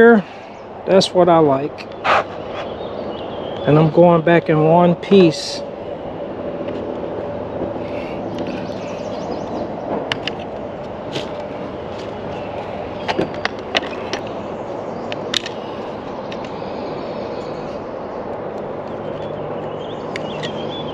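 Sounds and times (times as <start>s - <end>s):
steady rumbling background noise: 0.0s - 20.9s.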